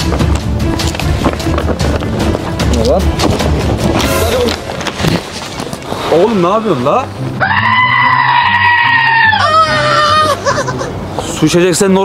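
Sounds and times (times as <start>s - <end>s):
music with a steady beat: 0.0s - 4.7s
high-pitched scream: 7.4s - 10.8s.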